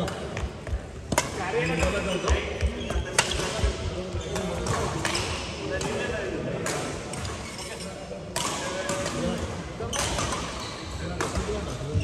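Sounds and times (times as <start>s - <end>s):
rackets striking shuttlecock: 4.3s - 6.0s.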